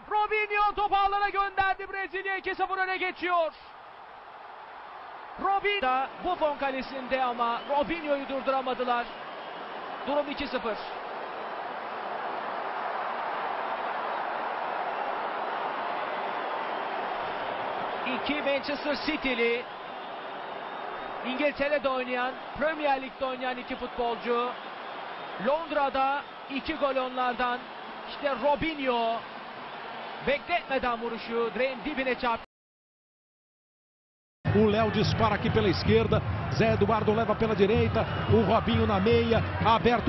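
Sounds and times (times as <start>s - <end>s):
man commentating: 0.0s - 3.8s, 5.4s - 9.2s, 10.0s - 11.0s, 18.0s - 19.7s, 21.2s - 24.6s, 25.4s - 29.2s, 34.5s - 40.0s
stadium crowd noise: 0.0s - 32.5s, 34.5s - 40.0s.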